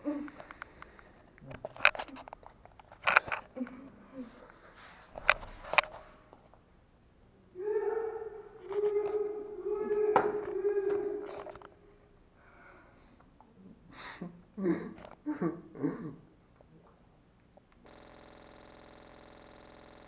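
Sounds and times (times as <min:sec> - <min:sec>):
person making wordless sounds: 0:07.6 - 0:11.6.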